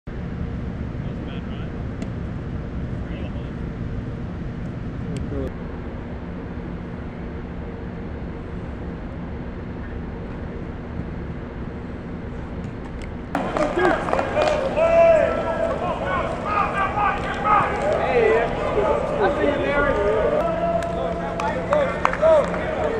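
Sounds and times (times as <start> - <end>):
stadium hum and rumble: 0.1 - 22.9.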